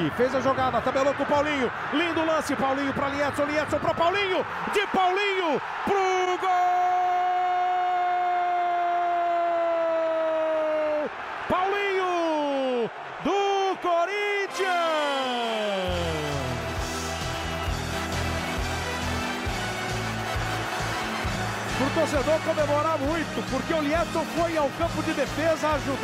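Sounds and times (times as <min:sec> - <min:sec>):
commentator shouting: 0:10.6 - 0:16.8
music with steady beat: 0:16.0 - 0:25.8.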